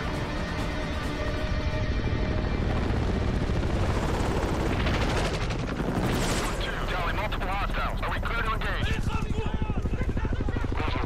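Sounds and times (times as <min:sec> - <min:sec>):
helicopter rotors beating: 0:00.0 - 0:11.0.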